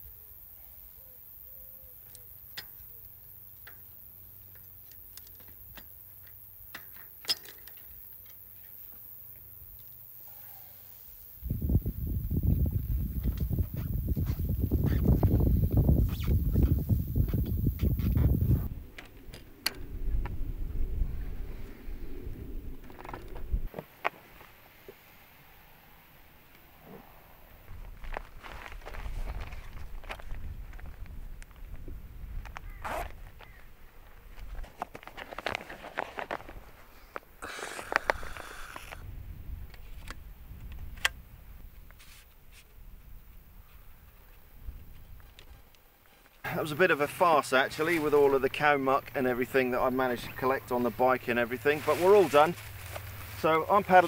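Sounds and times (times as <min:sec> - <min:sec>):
bicycle clicks and rattles: 0:03.6 - 0:08.9.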